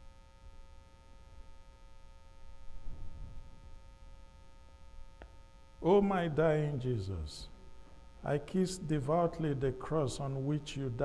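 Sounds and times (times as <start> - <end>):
electrical hum: 0.0 - 11.0
man speaking: 5.8 - 7.6, 8.2 - 11.0.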